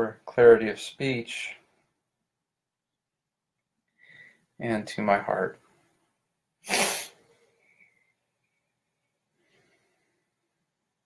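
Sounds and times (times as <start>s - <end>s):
forceful burst of breath: 6.6s - 7.3s.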